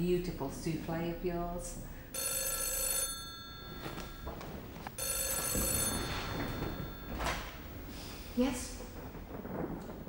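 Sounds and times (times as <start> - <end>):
telephone ringing: 2.1 - 7.8.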